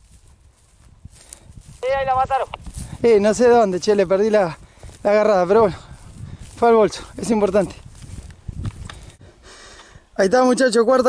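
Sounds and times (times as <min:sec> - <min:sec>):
wind rumble on microphone: 0:00.0 - 0:10.2
man speaking loudly: 0:01.8 - 0:05.8, 0:06.6 - 0:07.8, 0:10.2 - 0:11.0.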